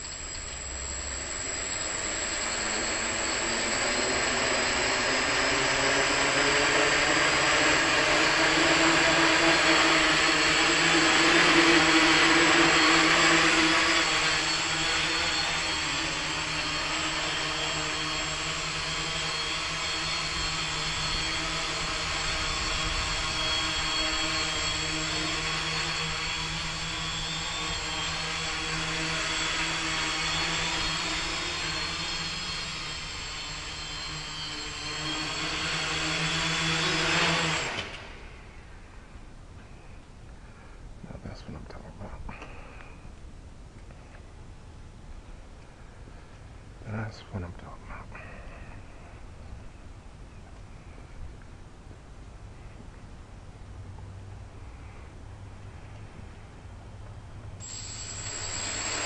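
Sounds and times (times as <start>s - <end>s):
drone propellers whirring: 0.0s - 40.9s, 48.2s - 59.0s.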